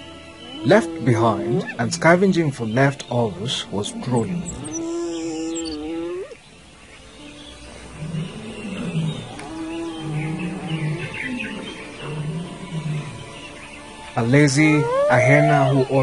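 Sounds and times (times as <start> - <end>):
low animal calls: 0.4 - 2.3, 4.0 - 6.4, 7.9 - 13.4, 14.5 - 16.0.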